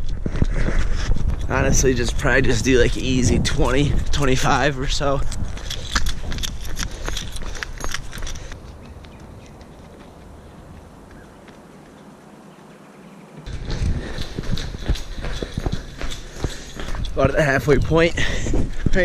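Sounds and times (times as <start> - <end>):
running footsteps on pavement: 0.0 - 12.6, 13.4 - 19.0
camera handling rumble: 5.2 - 10.0.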